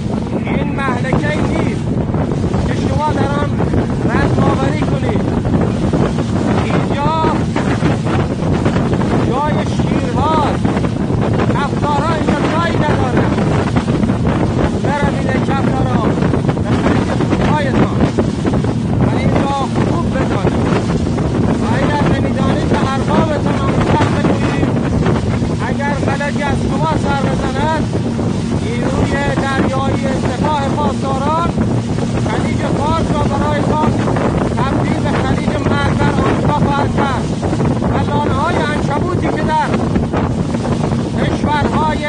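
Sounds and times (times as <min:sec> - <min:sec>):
hull rushing through spray: 0:00.0 - 0:42.0
speedboat engine: 0:00.0 - 0:42.0
wind buffeting microphone: 0:00.0 - 0:42.0.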